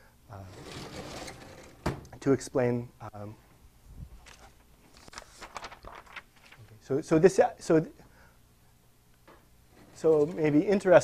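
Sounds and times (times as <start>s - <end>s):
blackboard panel scraping: 0.4s - 1.9s, 9.7s - 10.8s.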